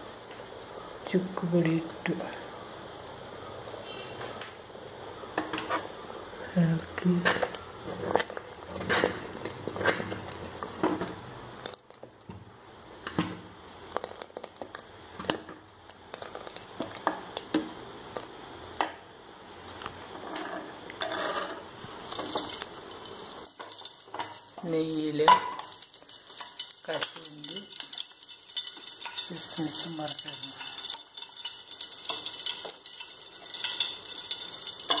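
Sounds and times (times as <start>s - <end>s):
ladle clinking and scraping pot: 20.2s - 22.6s, 30.6s - 35.0s.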